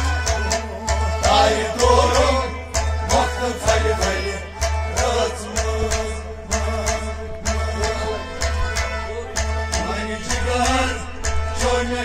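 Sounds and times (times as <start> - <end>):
harmonium: 0.0 - 12.0
percussion strokes: 0.0 - 12.0
plucked rabab: 0.0 - 12.0
man singing: 1.2 - 12.0.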